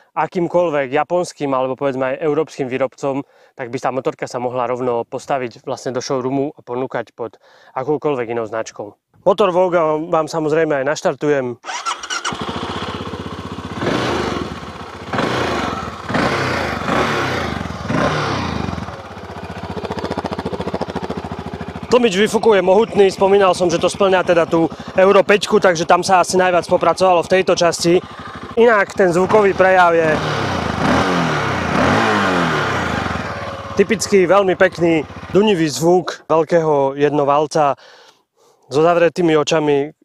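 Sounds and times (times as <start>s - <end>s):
motorcycle engine idling and revving: 11.7s - 35.7s.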